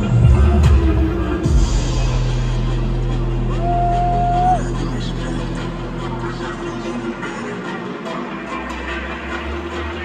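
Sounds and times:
deep bass drone: 0:00.0 - 0:07.5
electronic dance music: 0:00.0 - 0:10.0.

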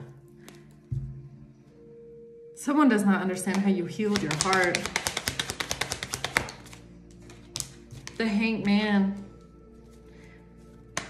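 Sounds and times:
cards shuffled clicking: 0:04.1 - 0:08.2.

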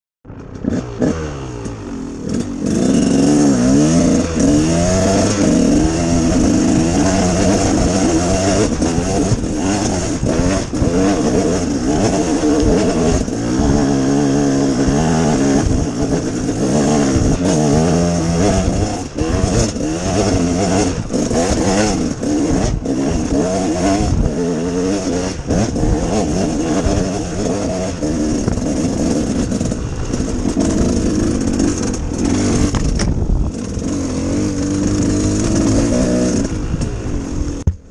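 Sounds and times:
dirt bike engine revving: 0:00.3 - 0:37.9.

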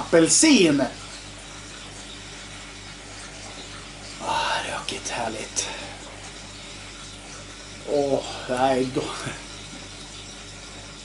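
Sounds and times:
low constant hum: 0:00.0 - 0:11.0
even hiss: 0:04.2 - 0:06.2.

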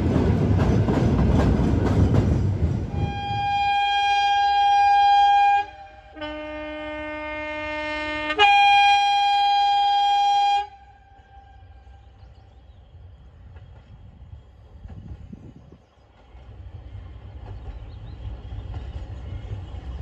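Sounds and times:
faint low train rumble: 0:00.0 - 0:20.0
two-tone train air horn: 0:02.9 - 0:12.0.

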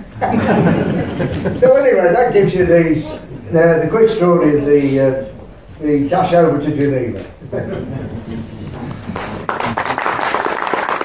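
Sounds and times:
audience applauding: 0:08.6 - 0:11.0.

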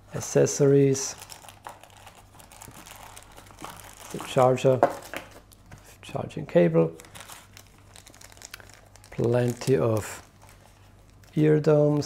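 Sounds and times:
plastic bags crinkling: 0:00.6 - 0:05.7, 0:06.9 - 0:12.0.

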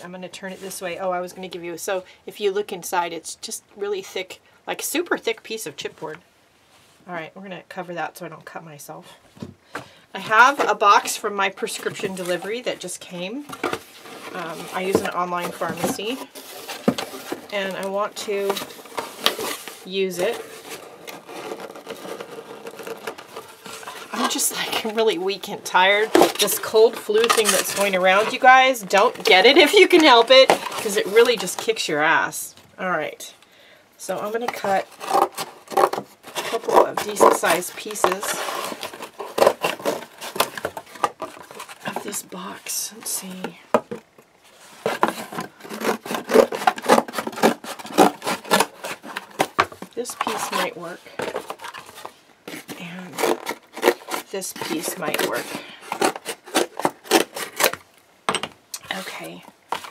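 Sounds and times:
cardboard crackling and creasing: 0:09.8 - 0:32.4, 0:34.1 - 0:58.0, 0:58.9 - 0:59.9.

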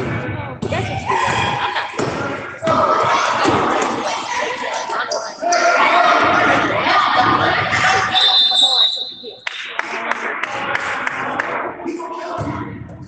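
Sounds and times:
voices calling out in a gym: 0:00.0 - 0:13.0
referee's whistle: 0:08.1 - 0:09.4.

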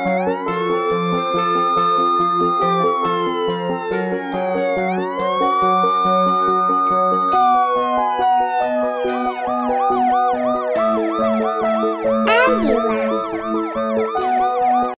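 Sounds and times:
background music: 0:12.3 - 0:13.4.

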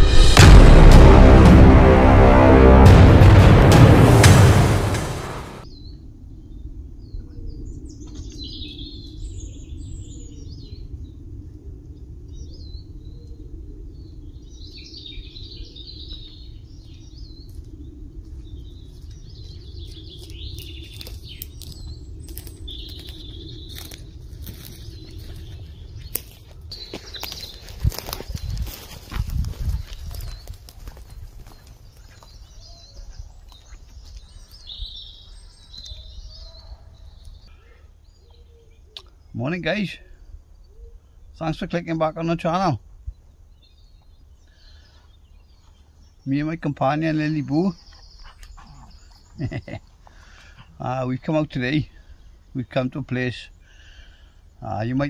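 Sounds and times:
small birds chirping: 0:05.7 - 0:11.2, 0:12.0 - 0:55.0
footsteps on twigs: 0:18.4 - 0:34.9.

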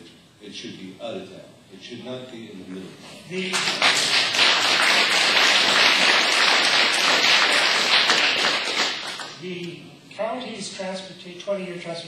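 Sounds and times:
audience applauding: 0:03.5 - 0:09.4.

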